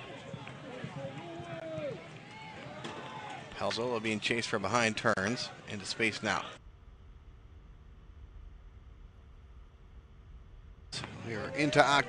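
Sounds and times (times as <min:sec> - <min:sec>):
faint low rumble: 0:06.6 - 0:11.2
steady hum: 0:06.6 - 0:11.6.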